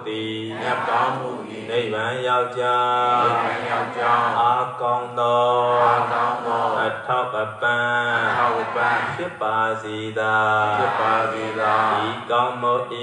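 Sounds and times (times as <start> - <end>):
melodic chanting: 0.0 - 13.0.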